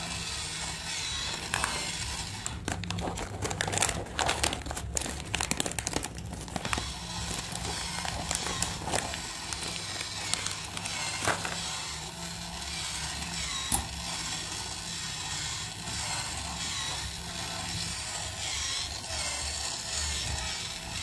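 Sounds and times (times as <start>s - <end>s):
toy motor and plastic gears: 0.0s - 21.0s.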